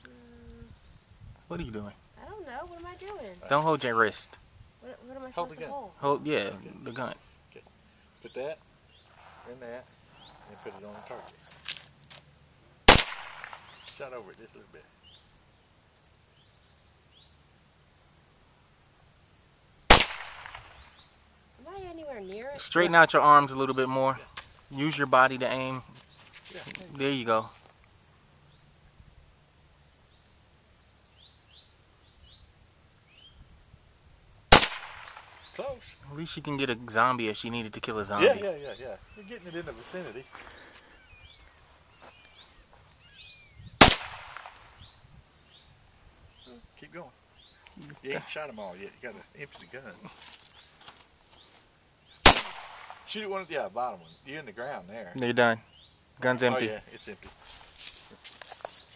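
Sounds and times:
pistol shot: 12.9 - 13.9, 19.9 - 20.9, 34.5 - 35.5, 43.8 - 44.8, 52.2 - 53.1.

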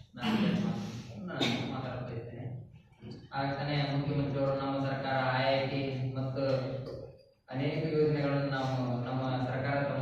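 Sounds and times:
man speaking in monotone: 0.0 - 6.9, 7.5 - 10.0.

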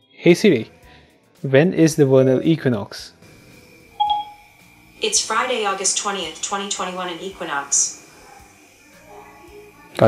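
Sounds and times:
phone electronic chime: 4.0 - 4.6.

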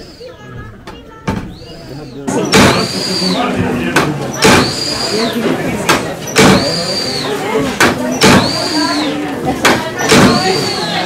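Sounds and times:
bellows mechanism knock: 2.5 - 3.0, 5.9 - 6.8, 9.6 - 10.6.

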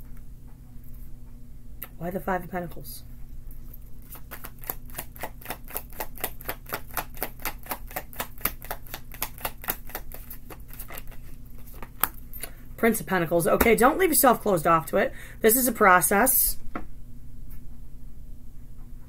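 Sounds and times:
cards being shuffled: 4.0 - 12.6.

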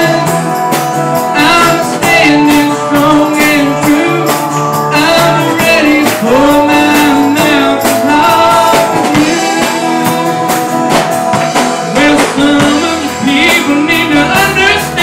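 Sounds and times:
acoustic guitar: 0.0 - 15.0
drum kit: 0.0 - 15.0
man singing: 0.0 - 15.0.

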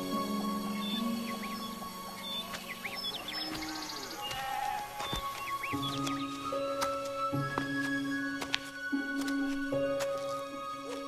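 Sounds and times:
small birds chirping: 0.0 - 8.2
film music with held tones: 0.0 - 11.0.

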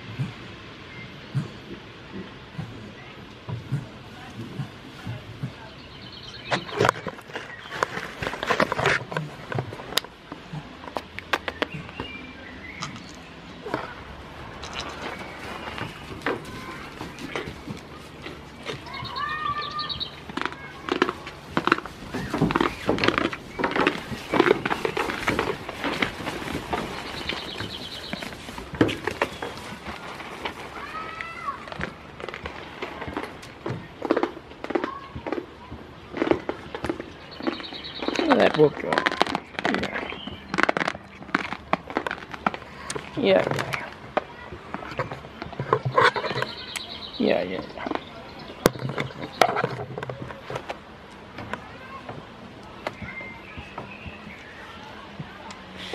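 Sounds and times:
goats crunching food: 1.3 - 55.9.

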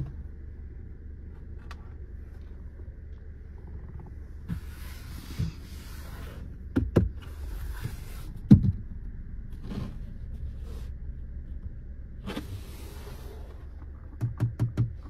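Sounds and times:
low steady cabin hum: 0.0 - 15.0
fingers knocking on dashboard: 14.1 - 15.0.

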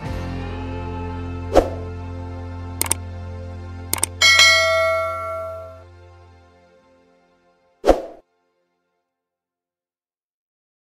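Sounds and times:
low steady music tone: 0.0 - 9.0
mouse click sound effect: 2.8 - 3.0, 3.9 - 4.2
notification bell chime: 4.0 - 5.8.

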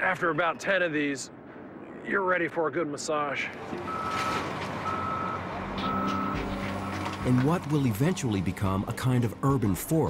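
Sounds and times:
back-up alarm beeping: 3.8 - 7.4.

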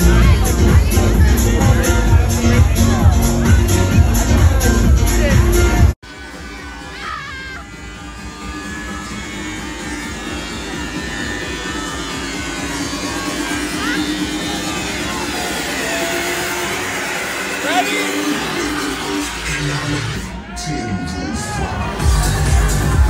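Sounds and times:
crowd talking and shouting: 0.0 - 23.0
loud club music: 0.0 - 23.0.

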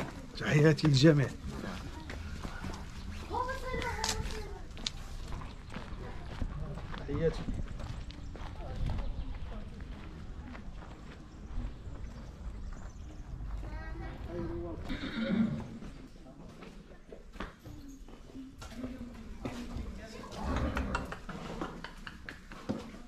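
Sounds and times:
people talking: 0.0 - 4.7, 8.2 - 11.8
horse whinnying: 14.9 - 15.8.

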